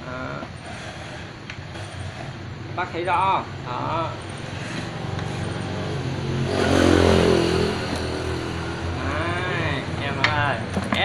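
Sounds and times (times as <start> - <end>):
steady low hum: 0.0 - 11.0
motor vehicle passing by: 3.6 - 10.6.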